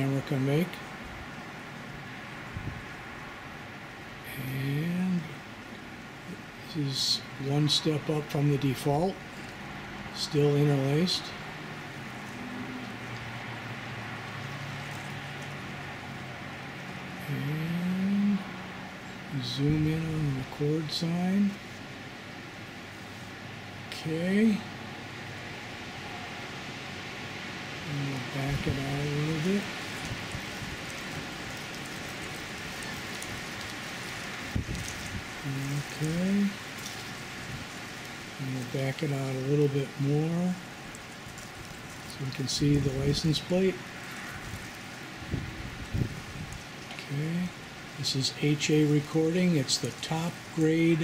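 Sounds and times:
man's voice: 0.0s - 0.8s, 4.3s - 5.4s, 6.6s - 9.2s, 10.2s - 11.4s, 17.2s - 18.5s, 19.3s - 21.6s, 23.9s - 24.7s, 27.8s - 29.8s, 35.4s - 36.6s, 38.4s - 40.6s, 42.1s - 43.8s, 47.0s - 51.0s
even hiss: 0.0s - 51.0s.

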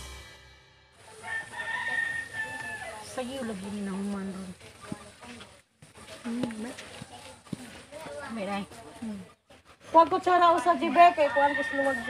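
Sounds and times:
rooster crowing: 1.1s - 3.2s, 10.8s - 12.0s.

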